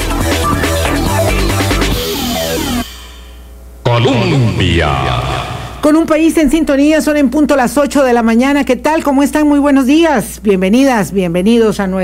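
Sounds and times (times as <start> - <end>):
electronic jingle music: 0.0 - 2.9
person speaking: 3.8 - 7.0.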